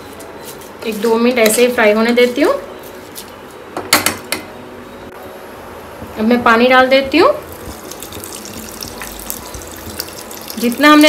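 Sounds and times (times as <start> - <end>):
faint sizzle of frying: 5.9 - 11.0.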